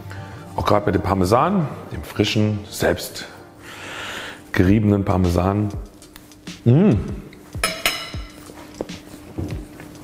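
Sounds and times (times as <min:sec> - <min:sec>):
quiet background music: 0:00.0 - 0:10.0
fork clinking on plate: 0:07.6 - 0:08.5.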